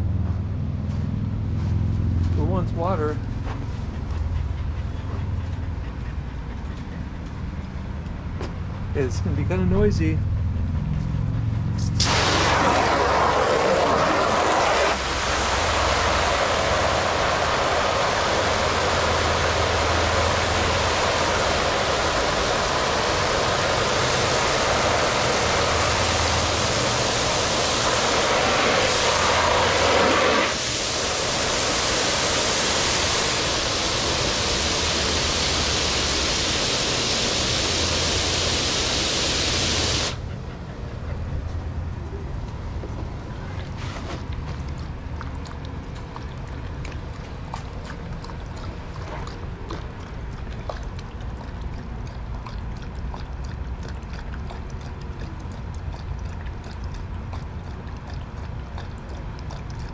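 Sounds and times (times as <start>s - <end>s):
hose spraying water: 11.8s - 40.2s.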